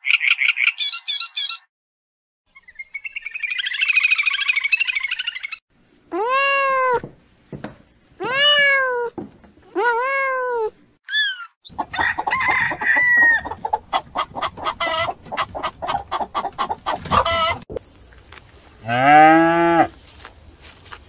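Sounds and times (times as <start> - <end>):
kitten meowing: 6.2 - 7.0, 8.2 - 9.1
chickens clucking: 11.7 - 17.8.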